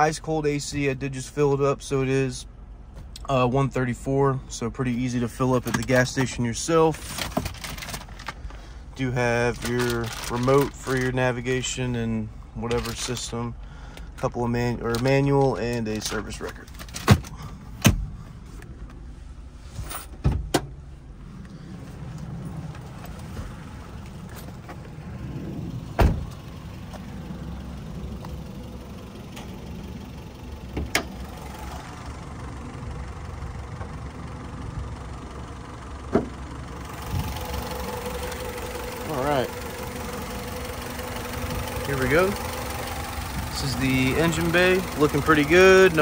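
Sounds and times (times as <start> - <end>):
car engine idling: 0.0 - 46.0.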